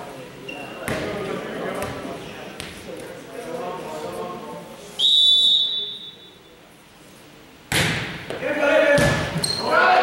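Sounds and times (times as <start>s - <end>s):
referee's whistle blast: 5.0s - 6.4s
indistinct crowd voices: 8.4s - 10.0s.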